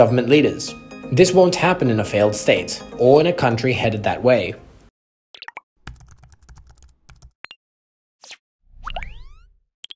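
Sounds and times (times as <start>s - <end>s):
rapid typing-like clicks: 5.9s - 7.4s.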